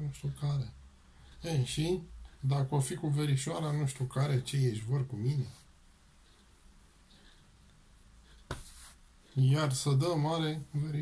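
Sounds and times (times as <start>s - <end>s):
fingers scratching hair: 8.3s - 9.0s.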